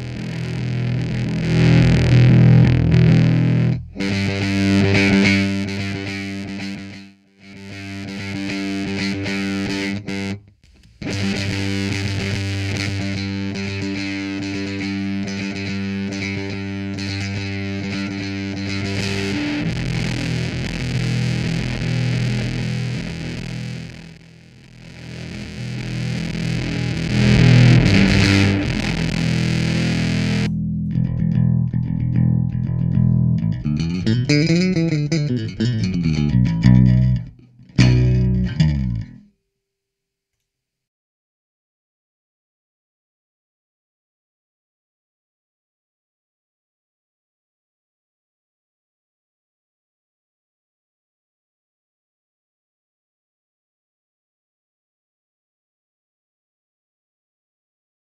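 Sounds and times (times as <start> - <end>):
fuzzed electric bass notes: 0.0 - 39.2.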